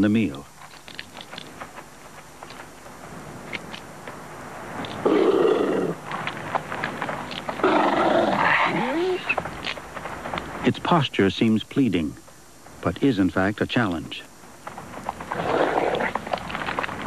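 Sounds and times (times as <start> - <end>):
coyotes snarling and growling: 4.8 - 9.5, 15.0 - 17.0.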